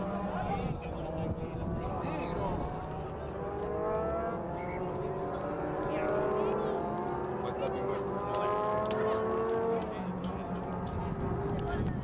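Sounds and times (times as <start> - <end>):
vehicle engine accelerating: 0.0 - 12.0.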